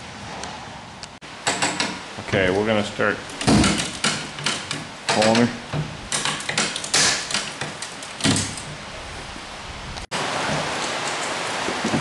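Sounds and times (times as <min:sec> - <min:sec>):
steady background hiss: 0:00.0 - 0:12.0
sharp clicks or knocks: 0:01.4 - 0:02.0, 0:03.3 - 0:08.7.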